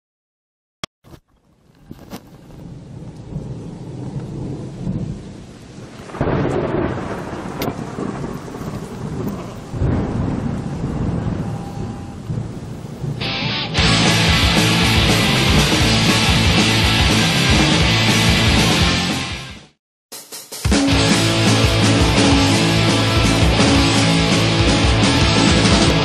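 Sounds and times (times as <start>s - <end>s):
rain: 1.5s - 16.1s
thunder rumbling: 2.4s - 18.6s, 21.0s - 26.0s.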